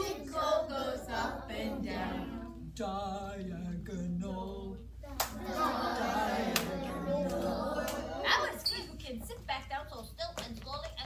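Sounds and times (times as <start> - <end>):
woman and children singing: 0.0 - 3.4.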